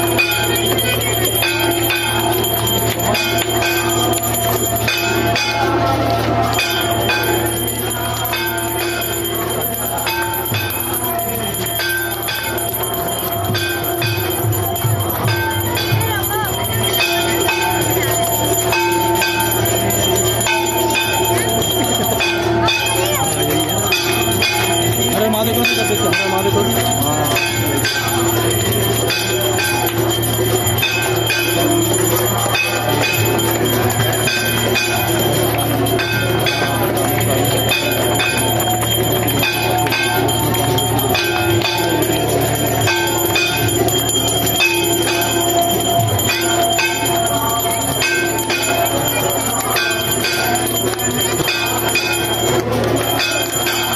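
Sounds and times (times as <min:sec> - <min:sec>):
bells ringing: 0:00.0 - 0:53.9.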